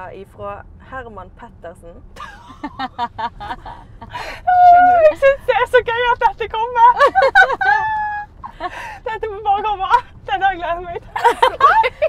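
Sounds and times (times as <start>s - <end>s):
car road noise hum: 0.0s - 12.0s
young woman laughing: 2.2s - 5.4s, 6.9s - 9.0s, 11.0s - 12.0s
woman gasping: 4.1s - 4.5s, 8.5s - 9.1s.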